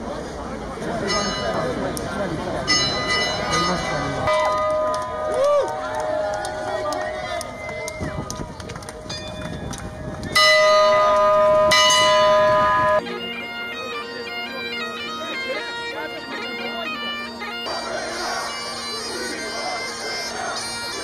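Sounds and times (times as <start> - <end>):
street crowd noise: 0.0 - 21.0
bagpipes playing: 10.3 - 21.0.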